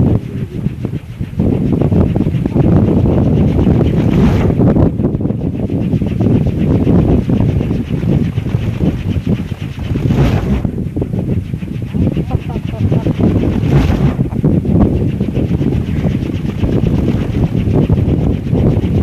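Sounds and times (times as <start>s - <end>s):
wind buffeting microphone: 0.0s - 19.0s
wind propeller whirring: 0.0s - 19.0s.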